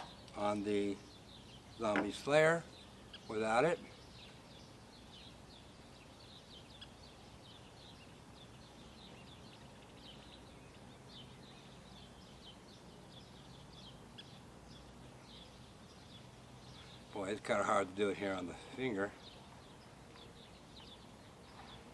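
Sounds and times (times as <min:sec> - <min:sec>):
faint bird chirps: 0:00.0 - 0:21.9.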